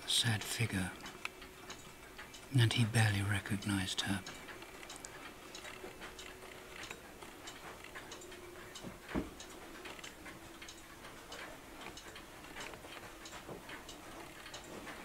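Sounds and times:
mechanical clock ticking: 0.0 - 15.0.

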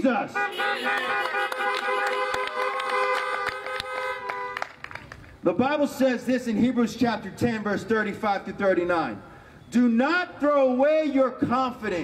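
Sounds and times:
car horns honking: 0.2 - 4.8.

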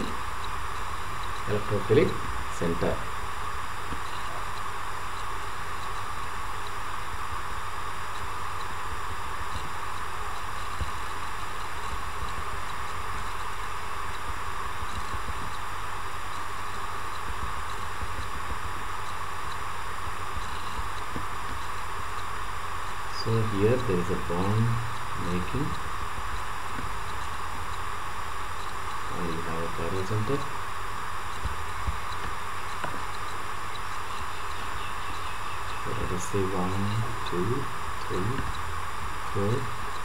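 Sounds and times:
low hum: 0.0 - 40.0
steady background hiss: 0.0 - 40.0.

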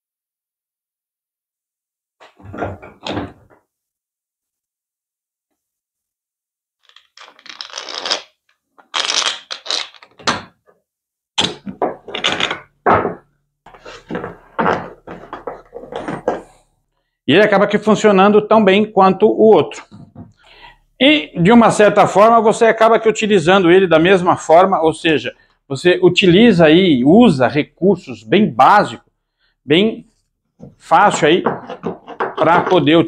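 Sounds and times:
knocks and clatters: 11.4 - 13.3, 14.0 - 16.6, 30.6 - 32.9
wooden blocks knocking together: 11.4 - 13.3, 14.1 - 16.6, 30.6 - 33.0.

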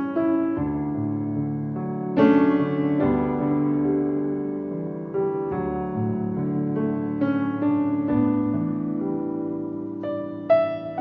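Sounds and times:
slow piano chords: 0.0 - 11.0.

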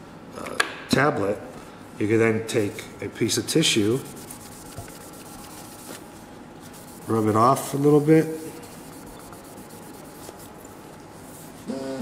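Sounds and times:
tissue scrubbing plastic: 3.9 - 11.7.

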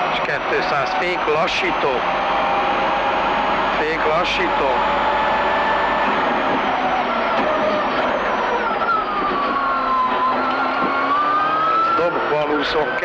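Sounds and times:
rally car engine revving: 0.0 - 13.0.

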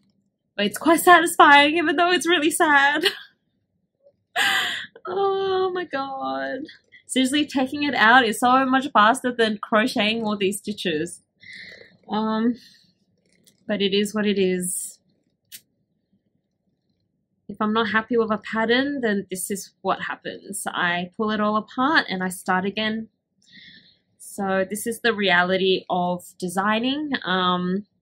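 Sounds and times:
woman laughing: 2.8 - 3.2, 4.4 - 5.7.

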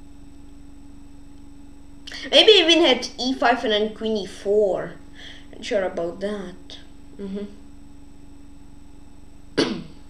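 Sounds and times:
faint electrical hum: 0.0 - 10.0
boy coughing: 9.6 - 10.0.

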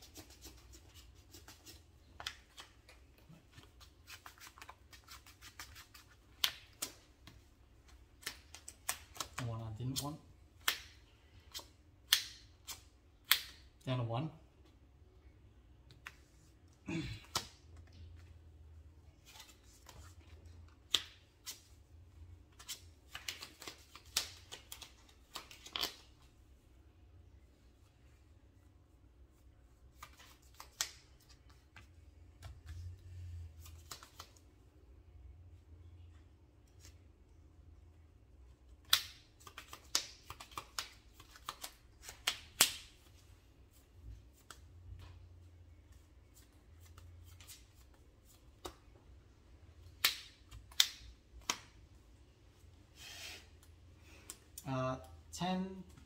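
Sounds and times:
trading cards shuffled and slapped: 0.0 - 10.0, 22.5 - 26.2, 29.9 - 33.0, 38.8 - 43.1, 45.9 - 49.0, 49.8 - 51.8.

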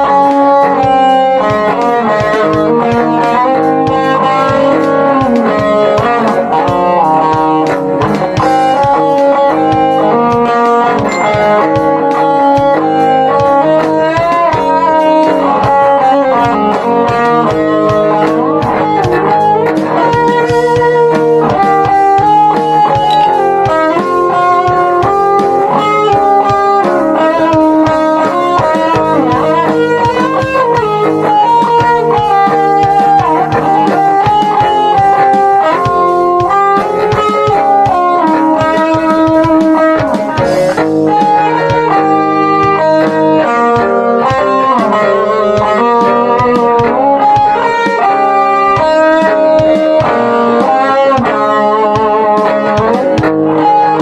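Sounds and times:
electric guitars playing: 0.0 - 54.0.

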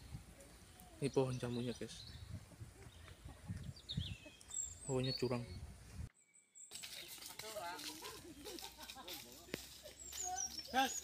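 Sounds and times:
distant voices talking and calling: 6.7 - 11.0.

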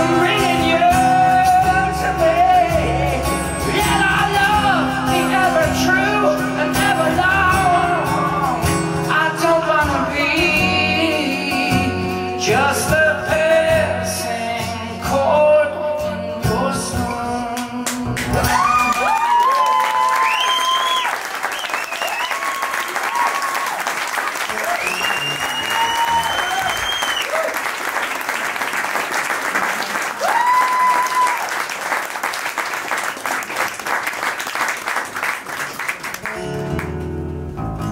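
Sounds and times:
audience applauding: 17.8 - 37.0
whoops and whistles: 18.4 - 23.7, 24.7 - 27.5.

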